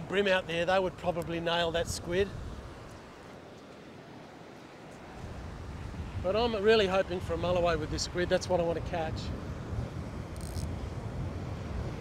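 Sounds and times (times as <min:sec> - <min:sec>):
wind rumble on microphone: 0:00.0 - 0:03.4, 0:04.9 - 0:12.0
surf washing: 0:00.0 - 0:12.0.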